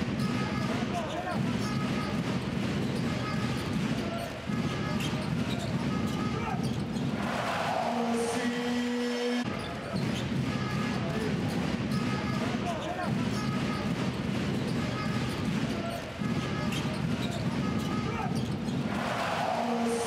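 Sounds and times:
basketball dribbling: 0:00.0 - 0:07.1, 0:09.6 - 0:18.8
crowd noise: 0:00.0 - 0:20.0.

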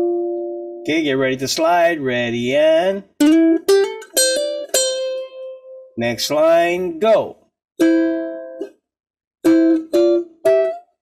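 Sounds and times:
ukulele picked notes: 0:00.0 - 0:08.8, 0:09.4 - 0:11.0.

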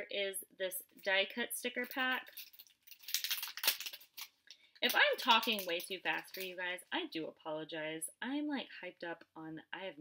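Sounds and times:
plastic bag crinkling: 0:01.8 - 0:06.6.

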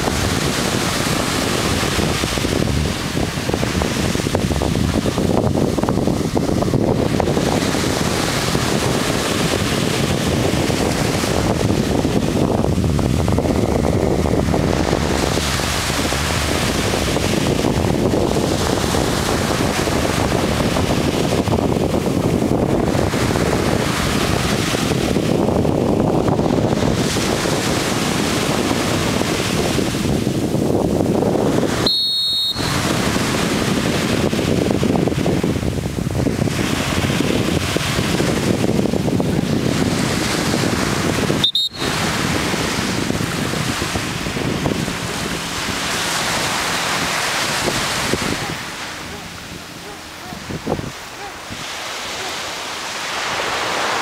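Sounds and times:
surf breaking on beach: 0:00.0 - 0:54.0
wind buffeting microphone: 0:00.0 - 0:54.0.

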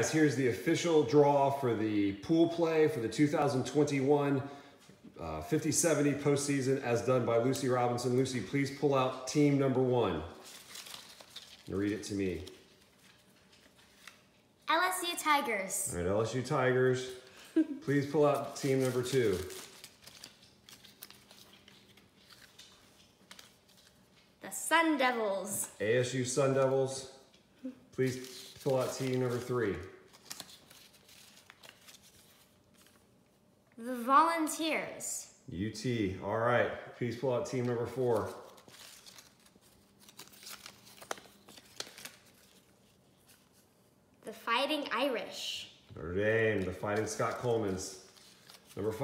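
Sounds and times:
paper slips rustling: 0:17.8 - 0:25.4, 0:28.0 - 0:33.1, 0:37.0 - 0:43.7, 0:46.5 - 0:49.0.

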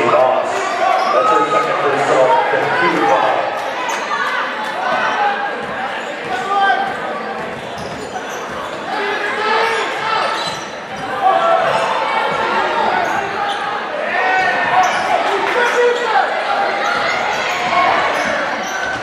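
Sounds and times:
many overlapping voices: 0:00.0 - 0:19.0.

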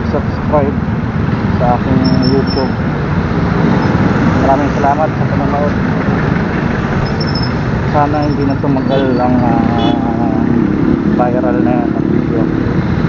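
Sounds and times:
person speaking: 0:00.0 - 0:00.8, 0:01.5 - 0:02.8, 0:04.4 - 0:05.8, 0:07.9 - 0:12.6
motorcycle engine and road noise: 0:00.0 - 0:13.0.

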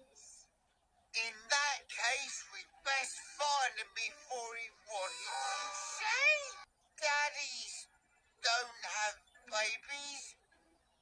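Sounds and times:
pitch-altered cartoon voice: 0:01.2 - 0:07.8.

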